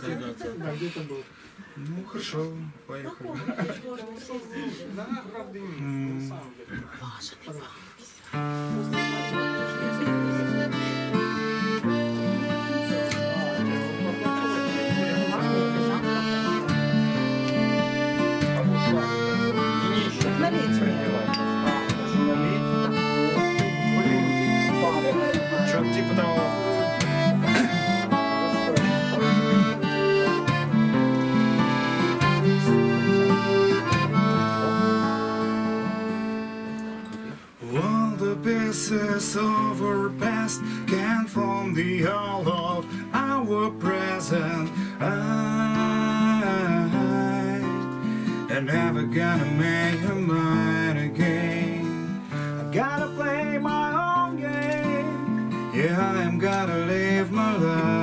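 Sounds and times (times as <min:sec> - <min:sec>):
acoustic guitar: 0:00.0 - 0:58.0
long held chords: 0:08.4 - 0:58.0.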